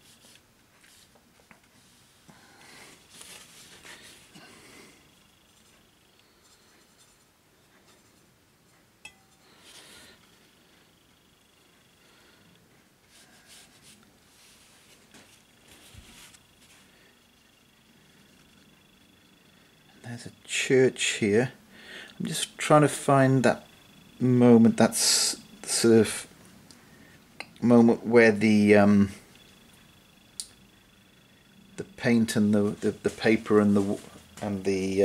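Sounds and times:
brush scratching across paper: 13.1s - 16.8s.

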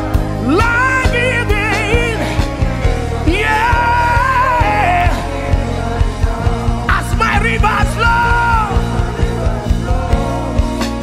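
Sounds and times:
man singing and shouting: 0.0s - 11.0s
worship band playing: 0.0s - 11.0s.

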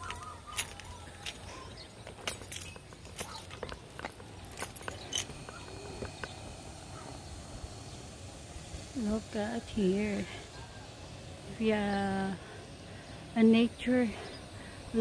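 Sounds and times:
footsteps clicks and rustles: 0.0s - 6.4s.

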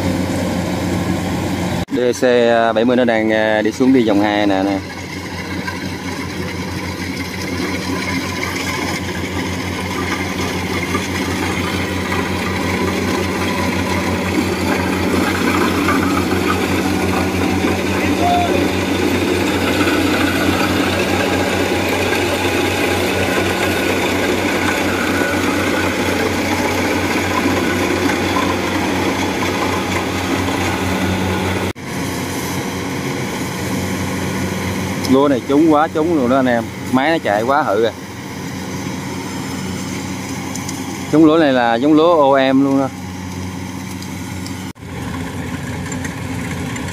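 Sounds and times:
combine harvester engine running: 0.0s - 46.9s.

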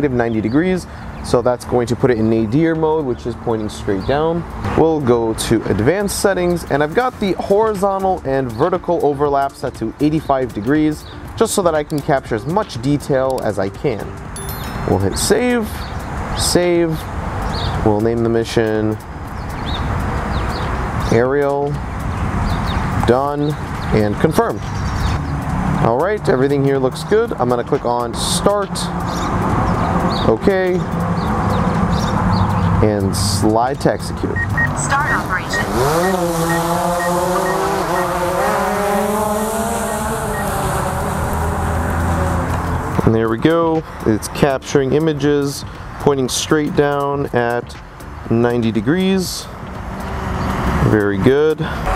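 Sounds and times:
drone propellers whirring: 34.4s - 43.0s.

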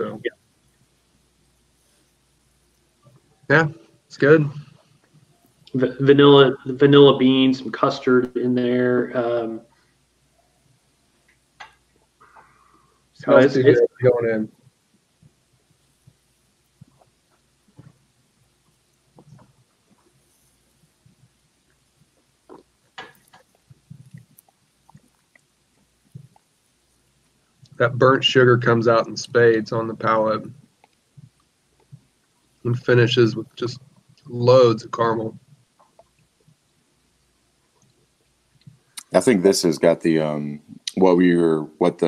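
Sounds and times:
faint soft ticks: 11.2s - 12.6s, 30.6s - 32.6s, 35.4s - 39.1s.

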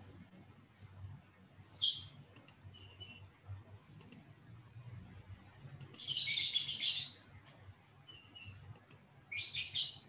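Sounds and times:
birds chirping: 0.0s - 4.1s, 5.8s - 7.3s, 7.9s - 10.0s.

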